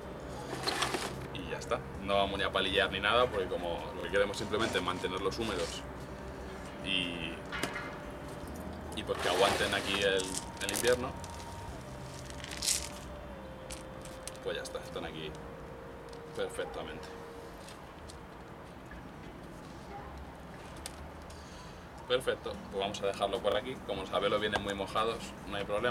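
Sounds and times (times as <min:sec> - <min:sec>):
gritty soil rustling: 0:00.3 - 0:15.4
faint gritty crunches: 0:09.0 - 0:14.5.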